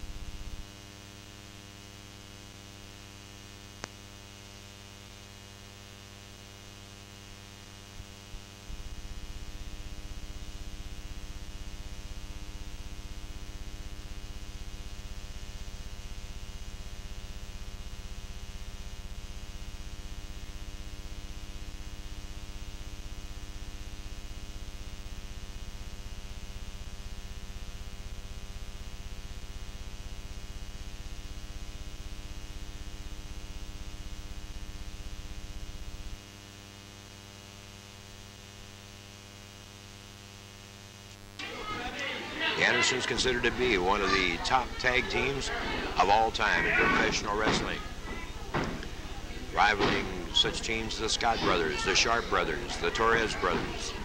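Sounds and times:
electrical hum: 0:00.0 - 0:54.0.

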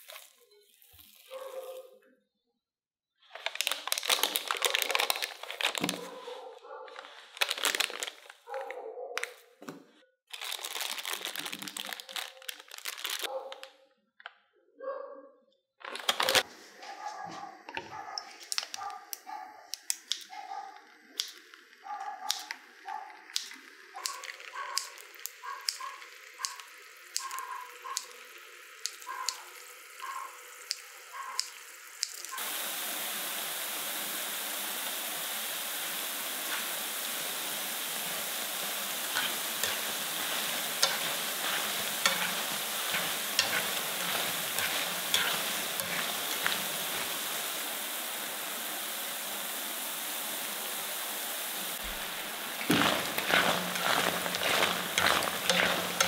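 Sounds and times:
dough deep-frying in oil: 0:00.0 - 0:01.6, 0:22.3 - 0:56.0
crackling pops: 0:37.8 - 0:47.3.

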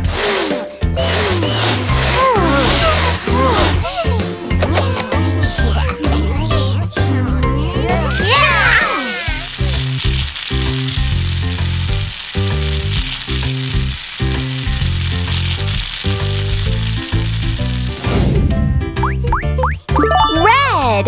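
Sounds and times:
air hissing out of balloons: 0:00.0 - 0:04.4, 0:08.5 - 0:18.4
children's music with bass beat: 0:00.0 - 0:11.3, 0:15.6 - 0:21.0.

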